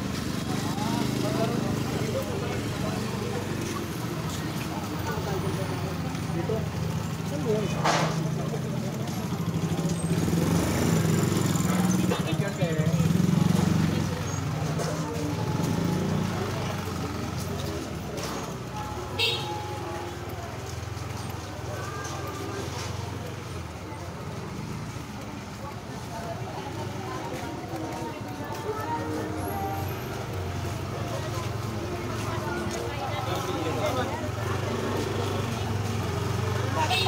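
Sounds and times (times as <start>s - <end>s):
indistinct voices: 0.0s - 37.0s
vehicle engine running: 0.0s - 37.0s.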